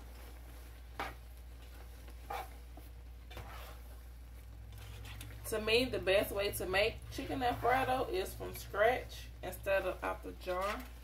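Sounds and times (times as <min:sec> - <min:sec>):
spatula stirring pasta in sauce: 0:00.1 - 0:11.0.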